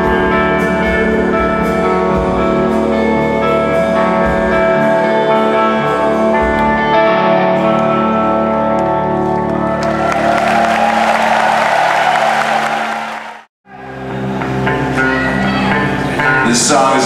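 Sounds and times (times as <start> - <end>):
electric guitars ringing chords: 0.0 - 11.7
crowd applause and cheering: 9.3 - 14.5.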